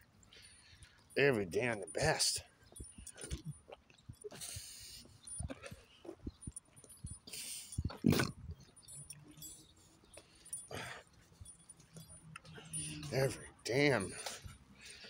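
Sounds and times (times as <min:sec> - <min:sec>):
man breathing heavily: 0:00.2 - 0:01.2, 0:04.2 - 0:08.0, 0:09.4 - 0:15.0
man groaning: 0:08.0 - 0:08.4.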